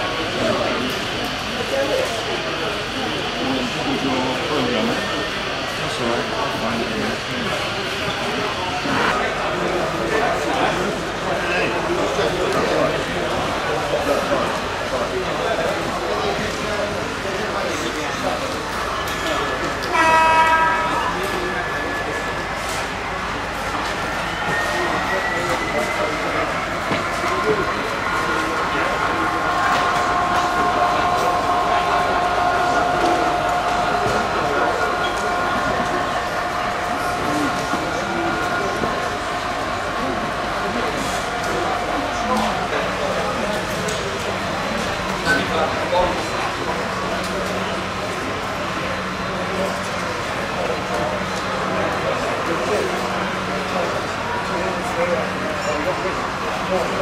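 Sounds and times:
crowd chatter: 0:00.0 - 0:57.0
model train running: 0:00.0 - 0:57.0
murmur of people talking: 0:00.0 - 0:57.0
thin whine: 0:18.8 - 0:56.8
steady tones: 0:19.8 - 0:57.0.

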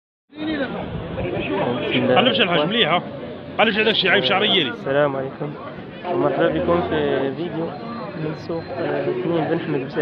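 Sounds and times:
people talking over one another: 0:00.3 - 0:10.0.

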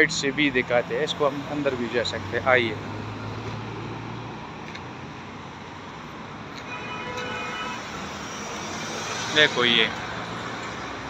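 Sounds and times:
road traffic passing: 0:00.0 - 0:11.0
passing car engine hum: 0:01.6 - 0:04.6.

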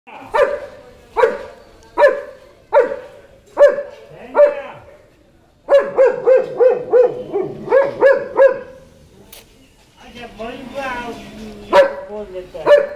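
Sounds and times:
dog barking: 0:00.3 - 0:04.8, 0:05.7 - 0:08.8, 0:11.7 - 0:12.9.

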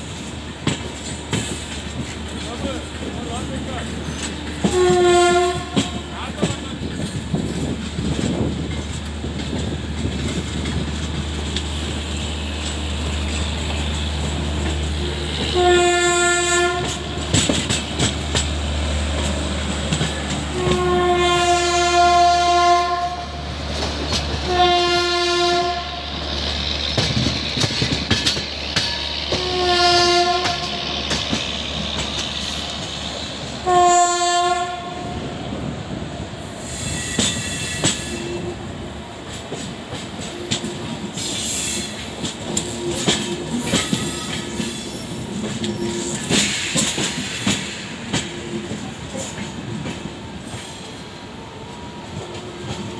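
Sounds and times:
train wheels clicking over rail joints: 0:00.0 - 0:22.5, 0:23.4 - 0:33.7, 0:35.0 - 0:52.9
locomotive horn blasts: 0:04.6 - 0:06.1, 0:15.4 - 0:17.2, 0:20.5 - 0:23.4, 0:24.4 - 0:26.1, 0:29.3 - 0:30.8, 0:33.6 - 0:35.2.

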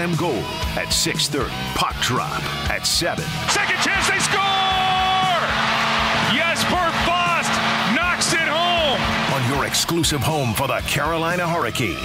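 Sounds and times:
person shouting or singing: 0:03.5 - 0:05.5.

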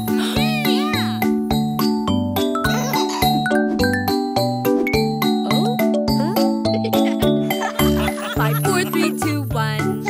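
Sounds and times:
children's song instrumental music: 0:00.0 - 0:10.0.

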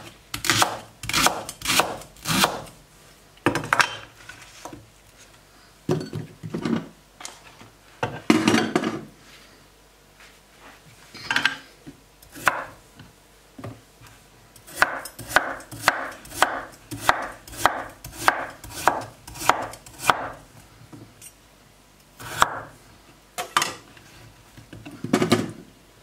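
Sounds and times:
knife chopping on wooden board: 0:00.4 - 0:02.7, 0:12.4 - 0:12.7, 0:14.7 - 0:20.4, 0:22.2 - 0:22.7.

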